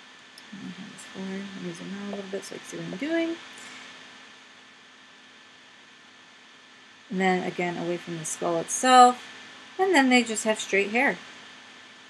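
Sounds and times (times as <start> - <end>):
faint recording hiss: 0.0 - 12.0
thin steady hum: 0.0 - 12.0.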